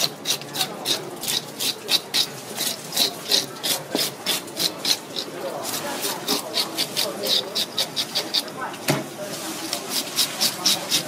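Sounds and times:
fish scaler scraping scales: 0.0s - 8.8s, 9.6s - 11.0s.

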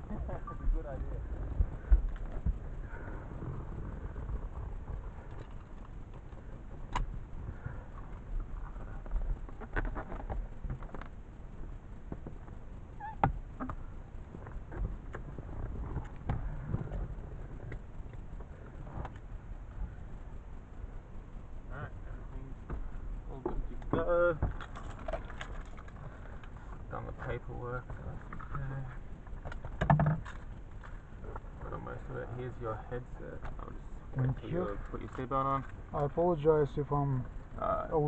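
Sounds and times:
steady low rumble: 0.0s - 38.0s.

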